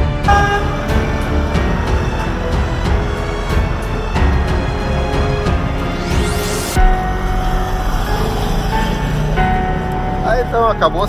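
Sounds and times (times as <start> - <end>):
music playing: 0.0 - 11.0
vehicle driving past: 0.6 - 11.0.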